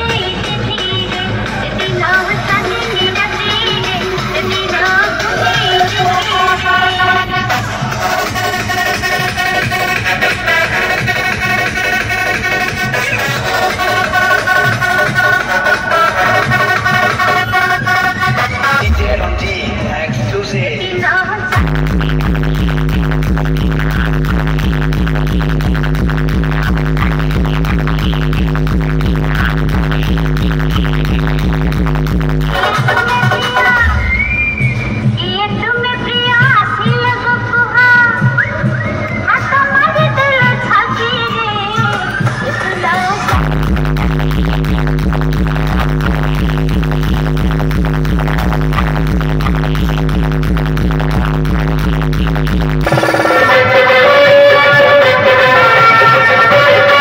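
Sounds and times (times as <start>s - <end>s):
electronic dance music: 0.0s - 57.0s.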